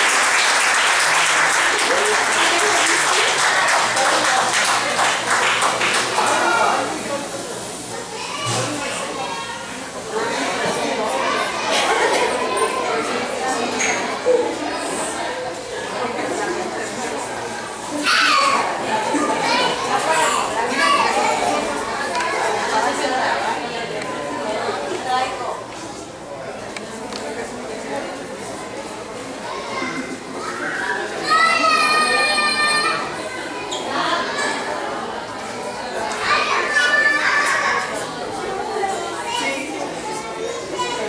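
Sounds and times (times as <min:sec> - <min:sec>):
children chattering and calling out: 0:00.0 - 0:41.0
general talk: 0:00.0 - 0:41.0.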